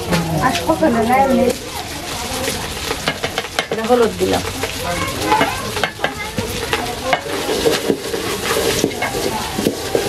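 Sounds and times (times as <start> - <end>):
food sizzling in pot: 0.0 - 10.0
spatula scraping metal pot: 2.8 - 10.0.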